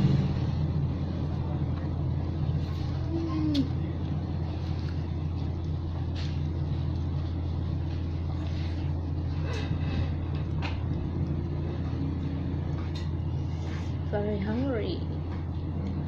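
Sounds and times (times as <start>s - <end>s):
electric fan humming: 0.0s - 16.0s.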